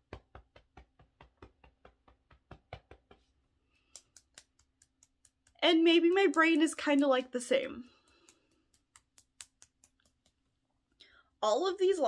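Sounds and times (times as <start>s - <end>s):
fingertips tapping on body: 0.0s - 10.5s.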